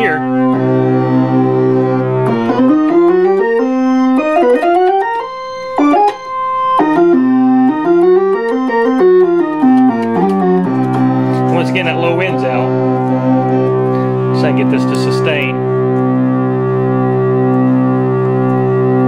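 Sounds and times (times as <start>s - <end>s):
analog synthesizer notes: 0.0s - 19.0s.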